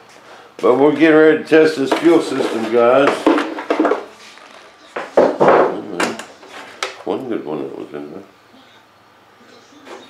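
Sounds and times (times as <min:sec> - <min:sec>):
wires knocking: 0:01.8 - 0:07.0
wires rustling: 0:01.8 - 0:07.3.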